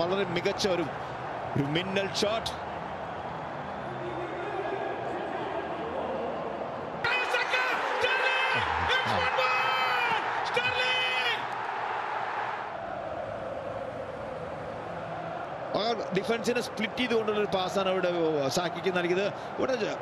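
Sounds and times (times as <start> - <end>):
stadium crowd noise: 0.0 - 20.0.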